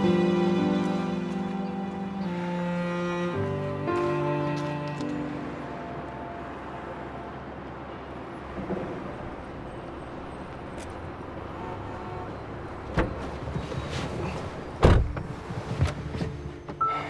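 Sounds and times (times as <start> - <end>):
music: 0.0 - 6.0, 15.4 - 17.0
city road traffic: 0.0 - 17.0.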